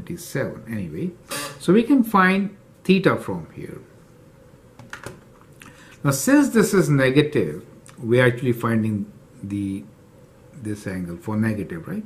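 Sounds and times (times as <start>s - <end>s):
faint clicks and taps: 4.8s - 6.0s.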